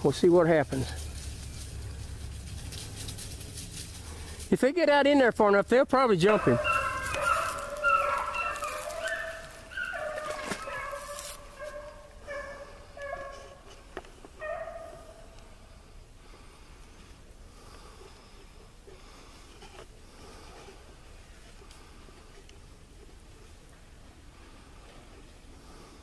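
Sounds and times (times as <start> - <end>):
hounds baying: 6.2 - 15.4.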